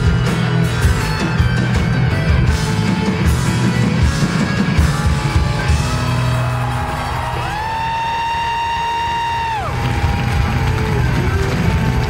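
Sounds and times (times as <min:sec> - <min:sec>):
drums: 0:00.0 - 0:12.0
live rock band playing: 0:00.0 - 0:12.0.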